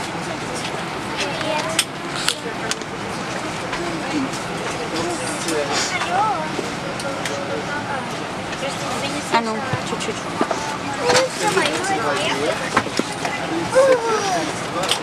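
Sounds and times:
quiet voices talking: 0:00.0 - 0:15.0.

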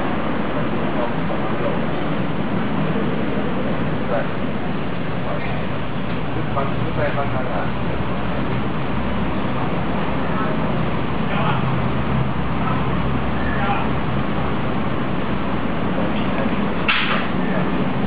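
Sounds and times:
faint voices talking: 0:00.0 - 0:18.0
low hum: 0:00.0 - 0:18.0.

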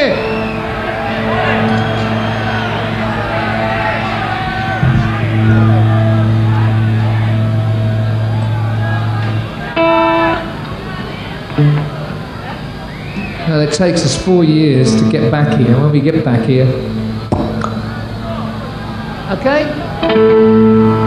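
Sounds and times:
crowd cheering and whistling: 0:00.0 - 0:21.0
low held tone: 0:14.9 - 0:19.2.

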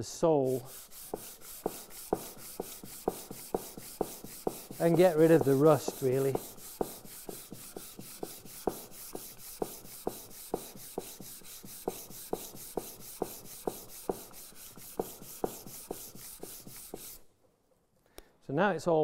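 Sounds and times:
plane scrubbing on abrasive paper: 0:00.0 - 0:17.3
plane knocking at each stroke: 0:00.4 - 0:17.2.

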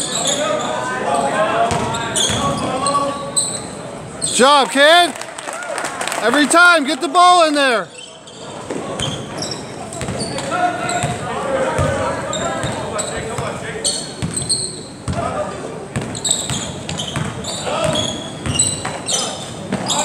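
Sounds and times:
sneaker squeaks: 0:00.0 - 0:04.6, 0:07.9 - 0:15.3, 0:15.9 - 0:20.0
murmur of crowd voices: 0:00.0 - 0:20.0
basketball bouncing on wooden floor: 0:16.0 - 0:19.0.

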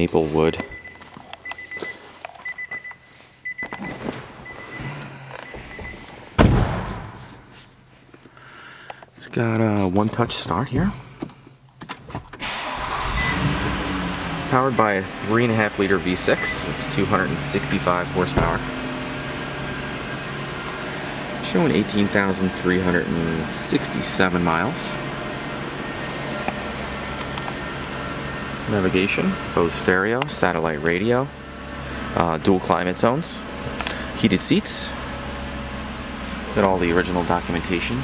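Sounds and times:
car warning chime beeping: 0:00.6 - 0:06.1, 0:13.1 - 0:13.9, 0:14.6 - 0:17.8
car door shutting: 0:03.9 - 0:07.2, 0:18.3 - 0:18.6
car engine idling: 0:12.4 - 0:38.0.

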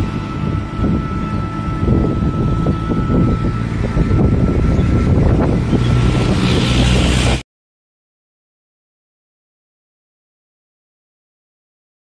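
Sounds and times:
thin high whine: 0:00.0 - 0:07.4
vehicle road rumble: 0:00.0 - 0:07.4
wind buffeting microphone: 0:00.0 - 0:07.4.

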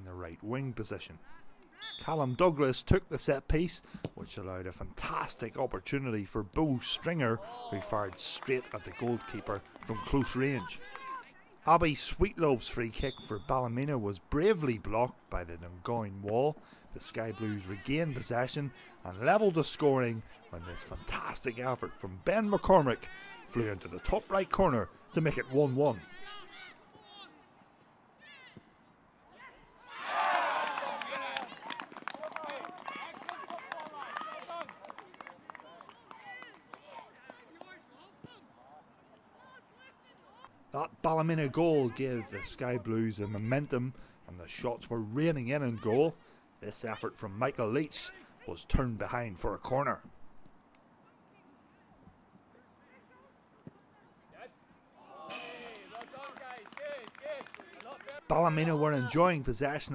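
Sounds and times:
people clapping: 0:07.7 - 0:11.3, 0:30.1 - 0:37.8, 0:55.6 - 0:58.8.

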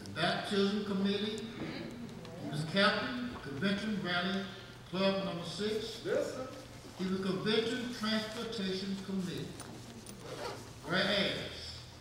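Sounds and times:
man speaking into a microphone: 0:00.0 - 0:09.6, 0:10.8 - 0:11.8.

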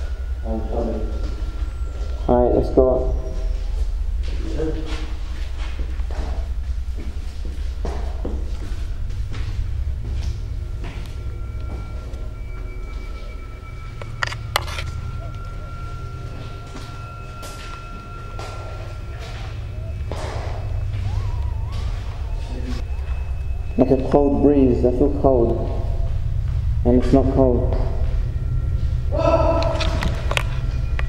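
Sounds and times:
droning background music: 0:00.0 - 0:31.0.

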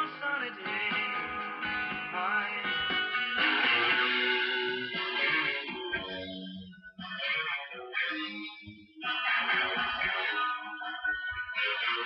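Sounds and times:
song with guitar: 0:00.0 - 0:12.0.

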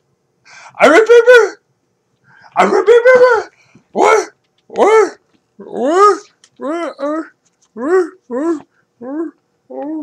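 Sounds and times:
dog whining: 0:02.6 - 0:10.0.

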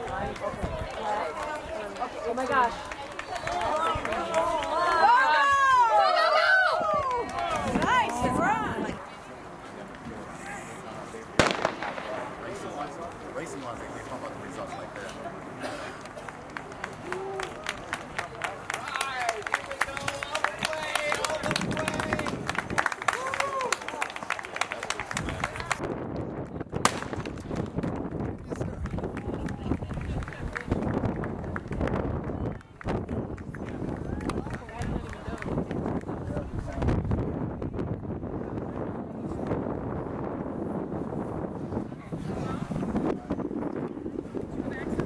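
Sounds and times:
wind buffeting microphone: 0:00.0 - 0:09.2, 0:19.3 - 0:23.7, 0:24.9 - 0:45.0
starter's pistol crack: 0:11.4 - 0:12.1.

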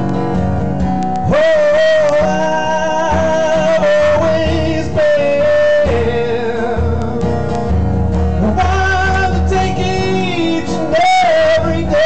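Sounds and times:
strummed acoustic guitar: 0:00.0 - 0:12.0
man singing wordless notes: 0:01.2 - 0:12.0.

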